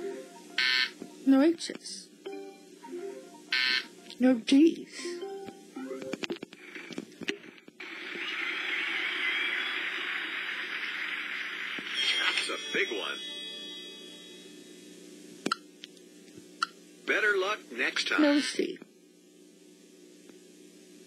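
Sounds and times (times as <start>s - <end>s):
short electronic tones: 0.0s - 1.0s, 2.3s - 4.1s.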